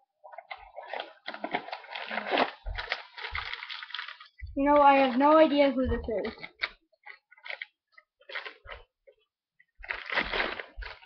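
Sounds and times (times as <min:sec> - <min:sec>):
packaging rustling and crinkling: 0:00.3 - 0:11.0.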